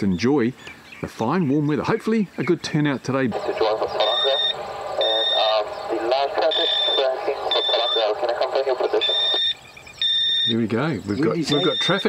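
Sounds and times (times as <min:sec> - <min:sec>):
high-pitched alarm beeps: 0:03.4 - 0:08.2, 0:08.9 - 0:10.6, 0:11.2 - 0:12.0.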